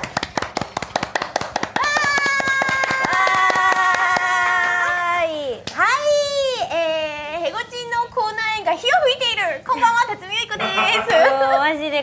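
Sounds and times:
people clapping rapidly: 0:00.0 - 0:05.0.

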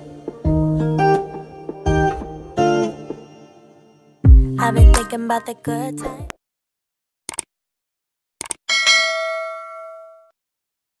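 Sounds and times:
notification bell ding: 0:08.7 - 0:10.3.

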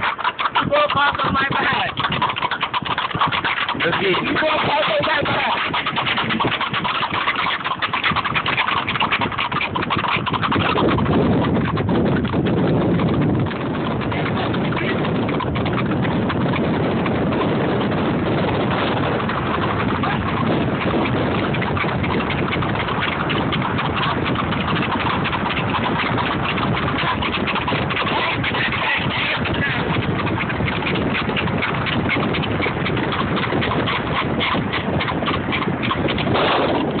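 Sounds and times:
hooves clip-clopping on pavement: 0:00.0 - 0:37.0.

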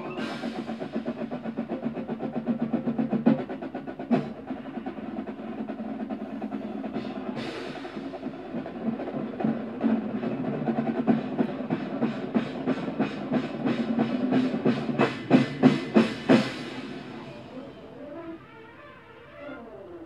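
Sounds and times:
snare drum patterns: 0:00.0 - 0:19.3.

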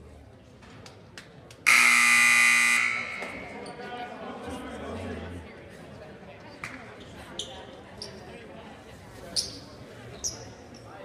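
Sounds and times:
scoreboard buzzer: 0:01.7 - 0:03.5.

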